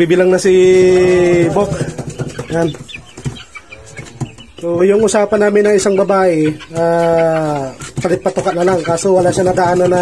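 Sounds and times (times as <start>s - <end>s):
person speaking: 0.0s - 2.9s, 3.9s - 10.0s
chicks peeping: 0.0s - 10.0s.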